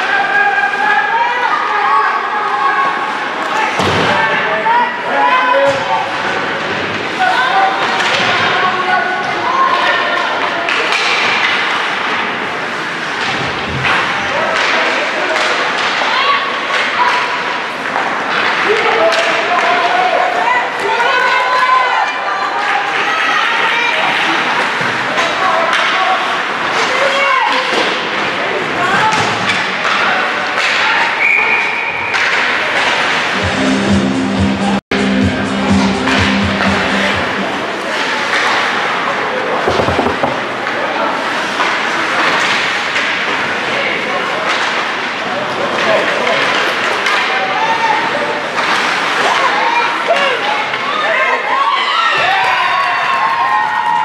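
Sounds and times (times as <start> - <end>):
thuds against the boards: 39.7 - 40.5.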